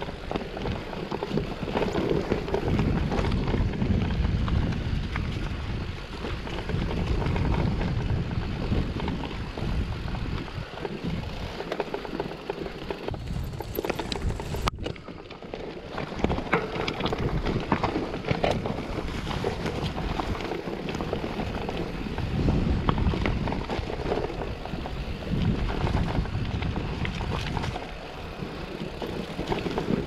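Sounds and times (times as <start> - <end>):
bike clicks and rattles: 0.0 - 30.0
tyres rolling on dirt and stones: 0.0 - 30.0
wind buffeting microphone: 0.0 - 30.0.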